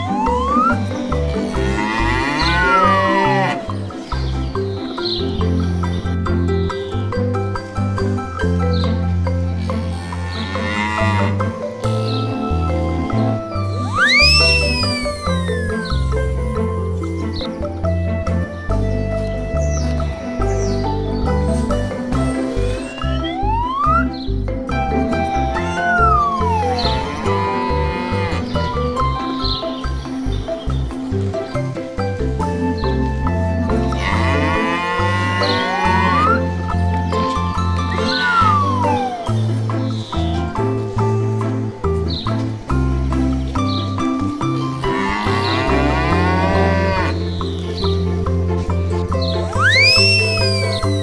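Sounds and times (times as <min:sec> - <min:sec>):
rising whistle sound effect: 0:00.0 - 0:00.8, 0:13.9 - 0:16.0, 0:25.8 - 0:27.0, 0:38.1 - 0:39.3, 0:49.5 - 0:51.0
playful background music: 0:00.0 - 0:51.0
cow mooing: 0:01.4 - 0:03.7, 0:10.0 - 0:11.5, 0:25.9 - 0:28.8, 0:33.9 - 0:36.6, 0:44.8 - 0:47.2.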